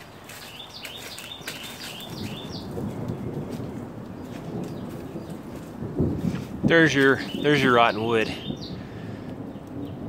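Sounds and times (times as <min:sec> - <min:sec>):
low rustling and scuffing: 0:00.0 - 0:07.2
songbird chirping: 0:00.0 - 0:10.0.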